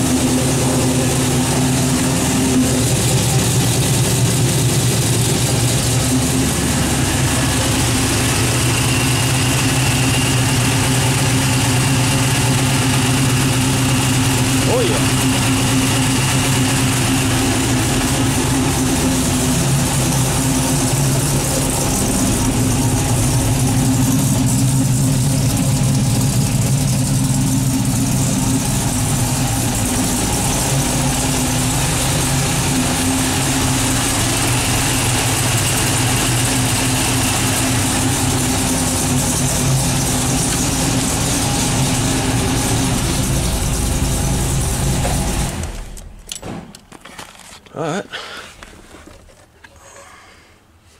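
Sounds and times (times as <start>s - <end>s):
car engine idling: 0.0s - 46.4s.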